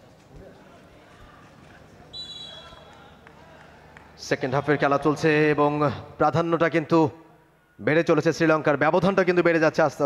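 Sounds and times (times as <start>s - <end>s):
low hall background noise: 0.0s - 10.0s
referee's whistle: 2.1s - 2.9s.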